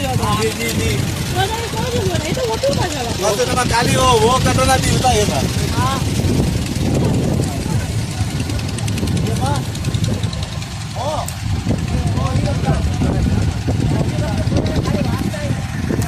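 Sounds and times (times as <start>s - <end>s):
men talking: 0.0s - 16.0s
vehicle engine running: 0.0s - 16.0s.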